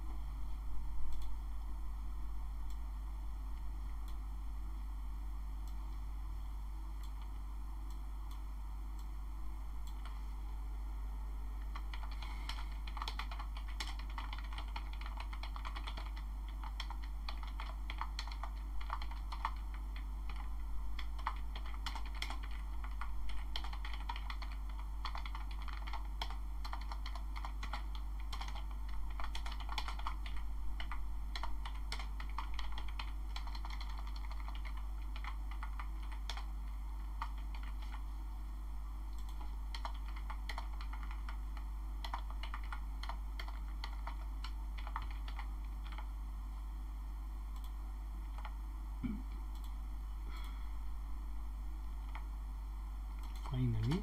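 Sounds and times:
steady low hum: 0:00.0 - 0:54.0.

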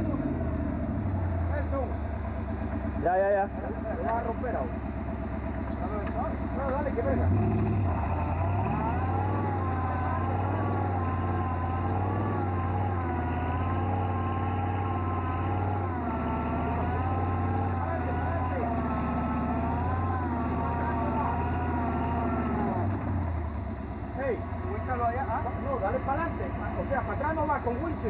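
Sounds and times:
engine revving hard: 0:05.8 - 0:23.5.

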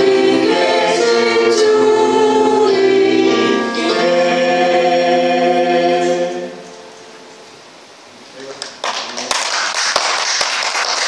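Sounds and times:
audience applause: 0:08.5 - 0:11.0.

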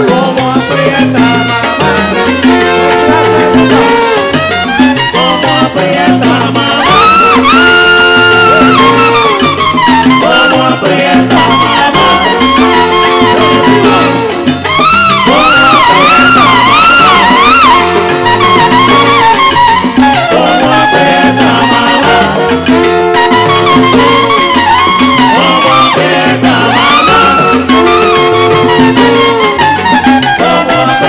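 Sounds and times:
live salsa band playing: 0:00.0 - 0:31.0.

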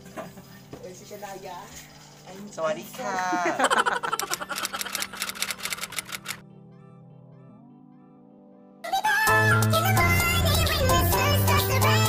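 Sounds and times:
soft background music: 0:00.0 - 0:04.2, 0:05.9 - 0:12.0
typewriter keys clicking: 0:04.1 - 0:06.4.

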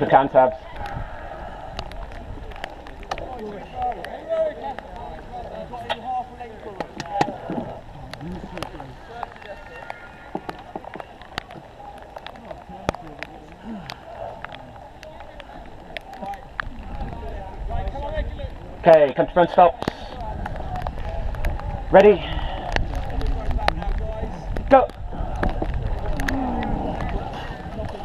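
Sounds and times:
faint voices talking: 0:00.0 - 0:28.0.

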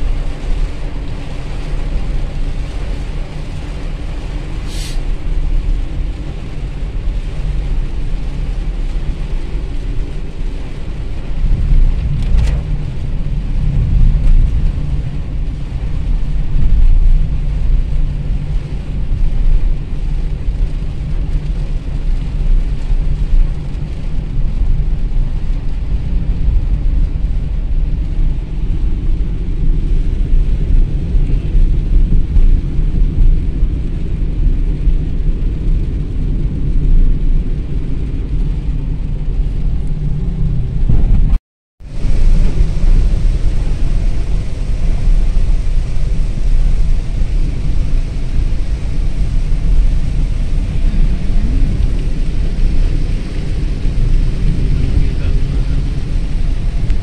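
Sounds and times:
engine and tyre noise: 0:00.0 - 0:57.0
rain hitting a car: 0:00.0 - 0:57.0.

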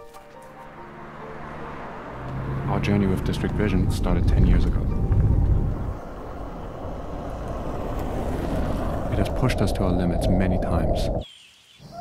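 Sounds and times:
car road rumble inside cabin: 0:00.8 - 0:09.4.

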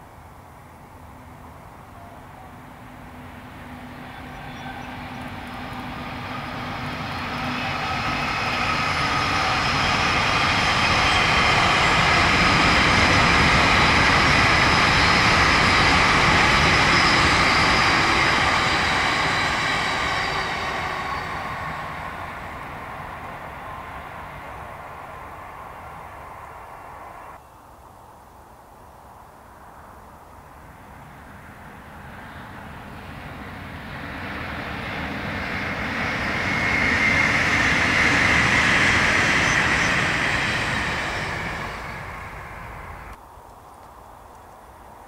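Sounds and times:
diesel locomotive engine: 0:01.0 - 0:27.4, 0:31.0 - 0:43.2
train wheel noise: 0:02.4 - 0:26.9, 0:32.0 - 0:43.2.

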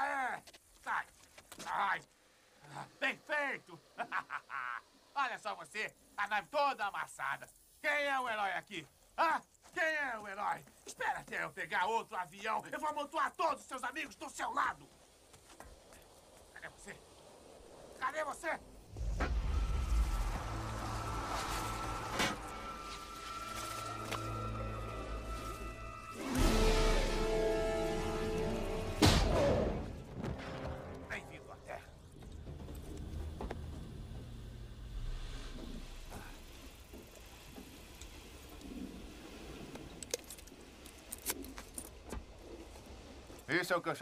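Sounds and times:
deep rumble: 0:18.6 - 0:37.2
low steady background rumble: 0:30.9 - 0:44.0.

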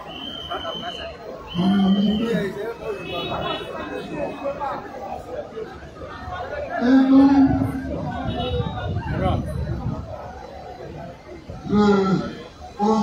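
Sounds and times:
people talking: 0:00.0 - 0:13.0.

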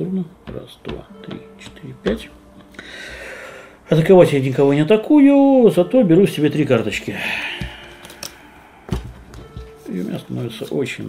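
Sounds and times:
cards and pieces tapping on table: 0:07.6 - 0:09.8.

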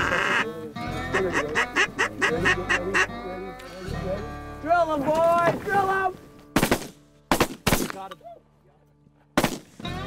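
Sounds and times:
duck quacking: 0:00.0 - 0:03.3
geese honking and cackling: 0:00.0 - 0:03.8
background music: 0:00.0 - 0:10.0.

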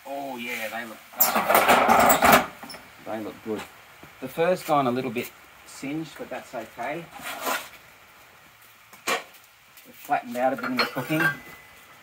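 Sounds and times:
metal tray scraping: 0:07.1 - 0:07.7.

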